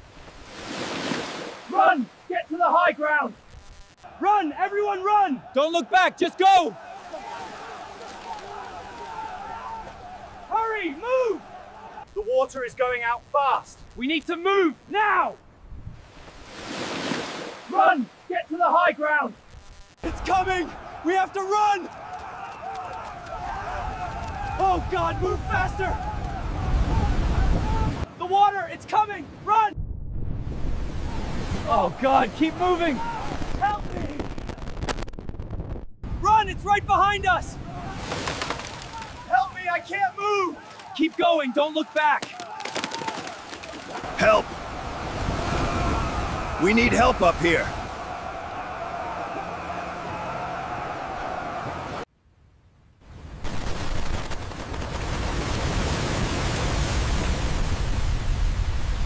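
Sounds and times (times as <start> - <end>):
floodwater rushing: 0.0 - 3.4, 4.0 - 12.6, 16.0 - 18.8, 20.1 - 28.6, 37.6 - 52.0, 53.4 - 59.0
distant shouting voices: 4.0 - 12.1, 20.0 - 28.2, 32.0 - 33.4, 36.2 - 38.1, 38.8 - 52.0
low rumble: 29.8 - 30.9.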